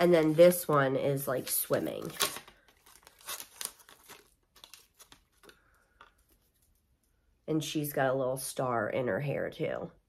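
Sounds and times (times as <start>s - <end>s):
wooden cutout crinkling and rustling: 0.0s - 7.1s.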